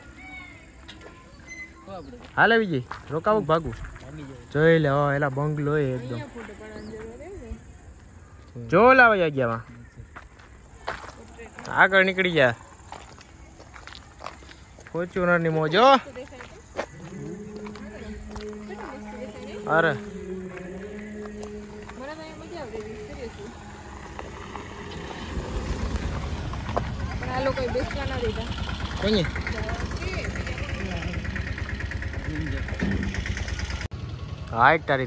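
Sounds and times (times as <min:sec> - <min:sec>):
footsteps on unpaved road: 0:00.0 - 0:33.3
low outdoor background hum: 0:00.0 - 0:35.0
cars driving past: 0:15.2 - 0:35.0
people talking: 0:15.6 - 0:20.3, 0:20.9 - 0:23.6, 0:26.8 - 0:33.3
car engine running: 0:16.6 - 0:35.0
man's voice: 0:17.0 - 0:22.0.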